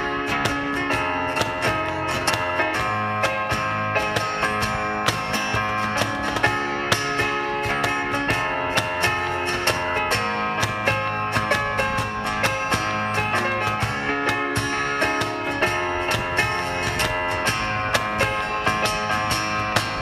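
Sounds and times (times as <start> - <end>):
acoustic guitars strumming: 0.0 - 20.0
cajon hits: 0.0 - 20.0.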